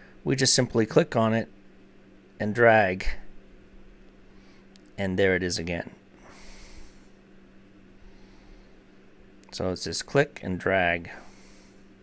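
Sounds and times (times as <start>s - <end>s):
faint electrical hum: 0.0s - 12.0s
man breathing in: 6.2s - 7.2s, 8.0s - 8.9s, 11.2s - 11.9s.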